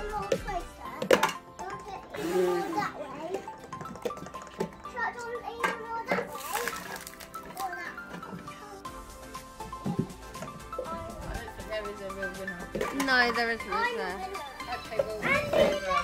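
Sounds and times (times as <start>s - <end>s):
upbeat background music: 0.0s - 16.0s.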